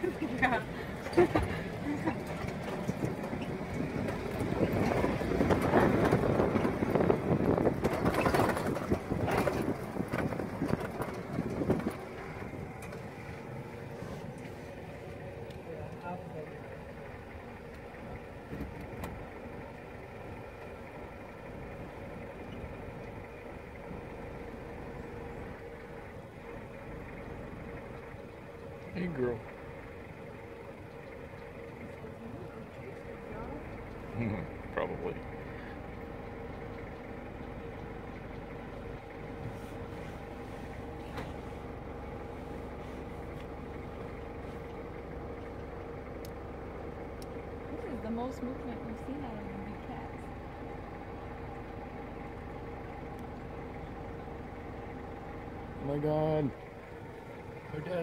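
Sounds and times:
vehicle engine on dirt track: 0.0 - 58.0.

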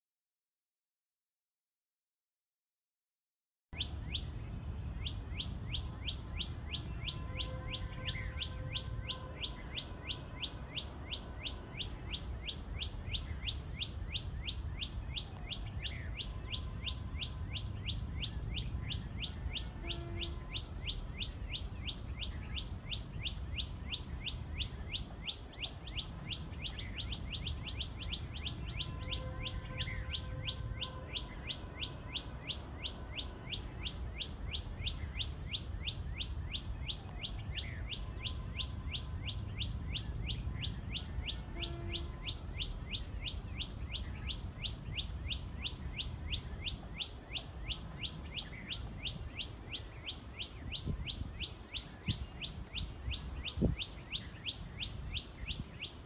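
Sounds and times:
bird singing sharp repeated notes: 3.8 - 56.0.

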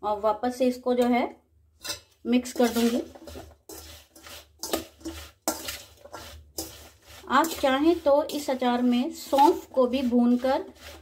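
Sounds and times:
spoon scraping a steel bowl: 1.8 - 11.0.

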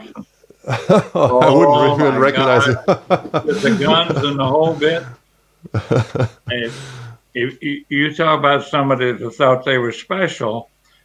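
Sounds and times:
man talking: 0.7 - 10.7.

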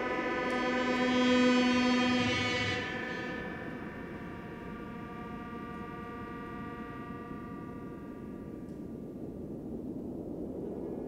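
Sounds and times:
violin and keyboard chord drone: 0.0 - 8.9.

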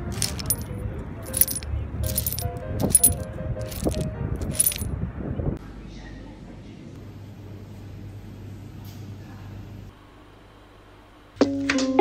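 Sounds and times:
found object music: 0.0 - 4.9
stones clinking and tapping: 0.1 - 0.7, 1.3 - 4.8.

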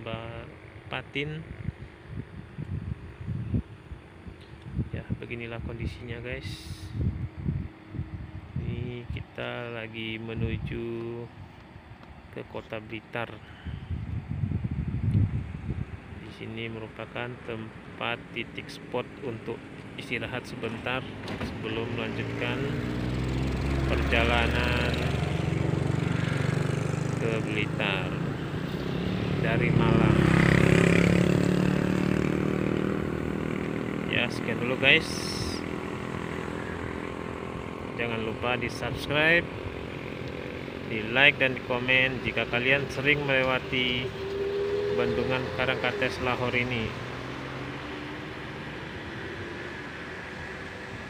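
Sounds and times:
wind buffeting microphone: 1.4 - 9.3, 13.6 - 16.2.

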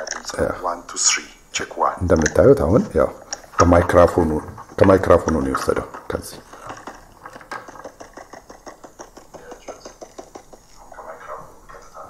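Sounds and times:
rapid light clicks: 3.2 - 10.8.

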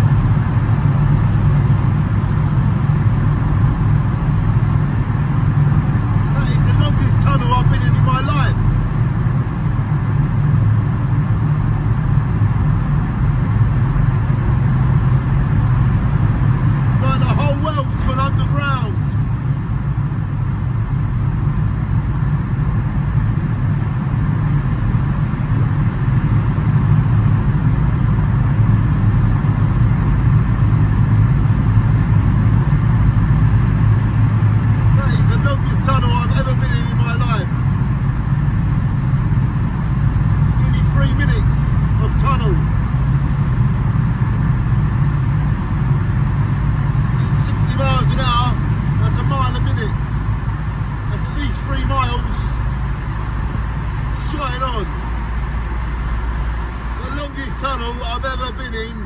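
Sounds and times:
car driving through tunnel: 0.0 - 59.0.

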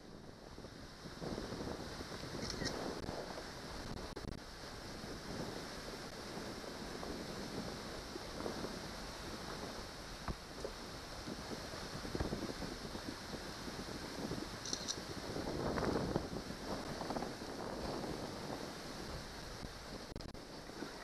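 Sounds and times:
choppy lake water: 0.0 - 21.0
wind buffeting microphone: 0.0 - 21.0.

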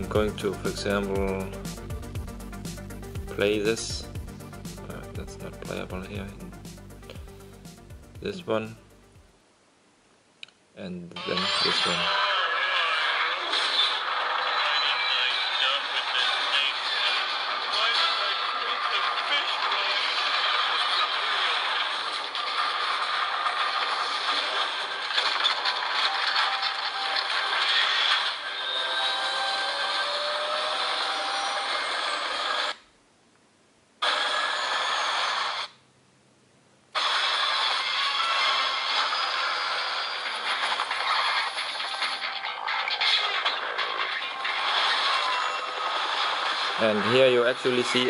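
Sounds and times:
video soundtracks through phone speaker: 10.9 - 32.8, 37.0 - 48.0.

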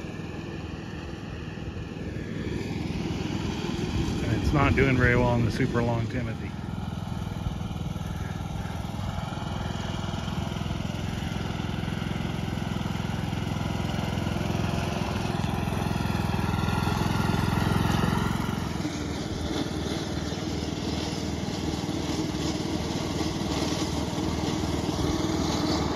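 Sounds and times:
riding lawn mower cutting grass: 0.0 - 25.9.

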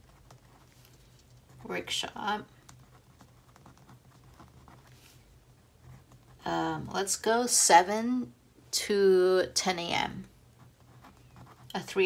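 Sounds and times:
pen scratching on paper: 0.0 - 6.5, 10.6 - 12.0
low steady hum: 0.0 - 12.0.

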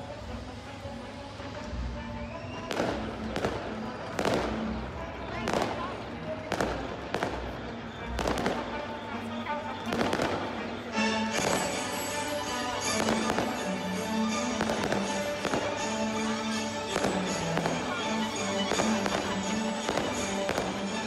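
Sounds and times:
music playing: 0.0 - 21.0
fireworks bursting with sharp bangs: 2.5 - 9.0, 9.8 - 21.0.

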